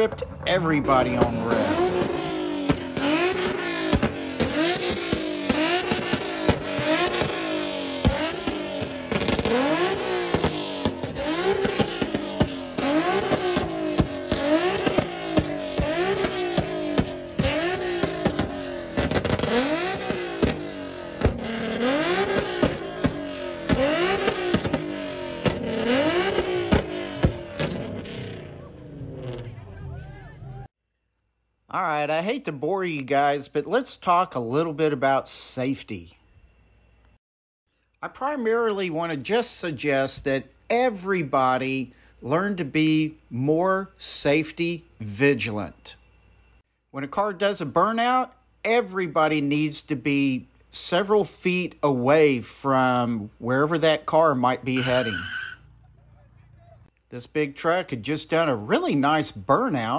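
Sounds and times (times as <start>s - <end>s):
exhaust pops: 0.0s - 29.4s
car engine revving: 0.0s - 30.7s.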